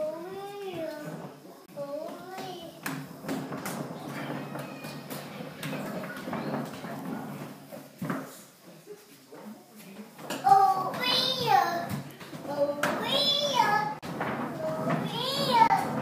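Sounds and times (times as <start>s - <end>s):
skateboard wheels rolling on wood: 0.8s - 8.2s, 10.4s - 16.0s.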